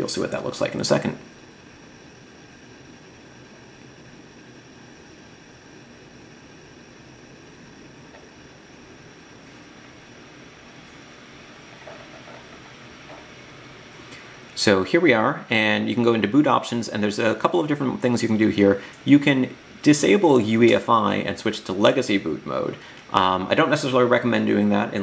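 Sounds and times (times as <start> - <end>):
faint high whine: 0.0 - 25.0
low hiss: 0.0 - 25.0.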